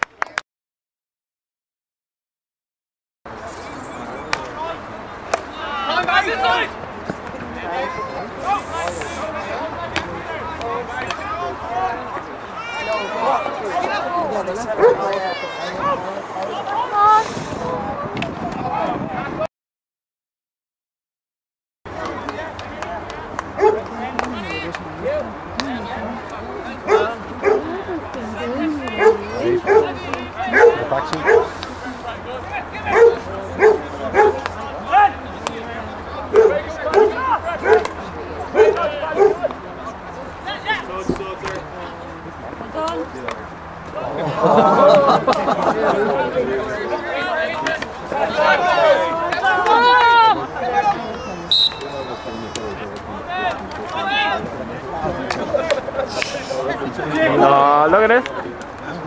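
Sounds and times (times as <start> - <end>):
voices talking: 3.3 - 19.5, 21.9 - 59.0
players shouting: 3.7 - 17.1, 21.9 - 41.7, 43.9 - 59.0
dog barking: 14.8 - 15.1, 23.6 - 23.8, 26.9 - 27.6, 29.0 - 29.9, 30.5 - 31.6, 32.9 - 34.4, 36.3 - 37.8, 38.6 - 39.4
whistle blast: 51.5 - 52.4.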